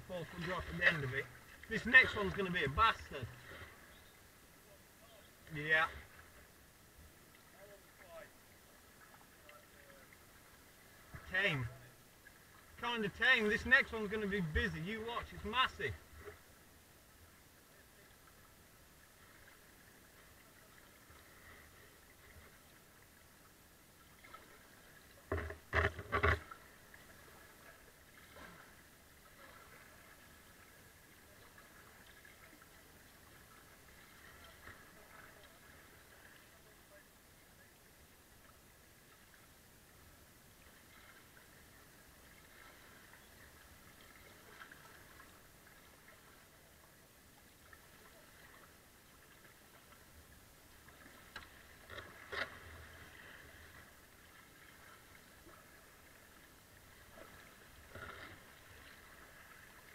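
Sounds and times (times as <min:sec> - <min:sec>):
flowing water: 0:00.0 - 0:59.9
paddle knocking on kayak: 0:25.3 - 0:26.5.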